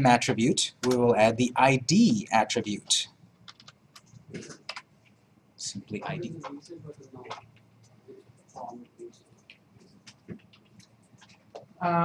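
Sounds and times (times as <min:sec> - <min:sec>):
computer keyboard key clicks: 0:03.5 - 0:04.1.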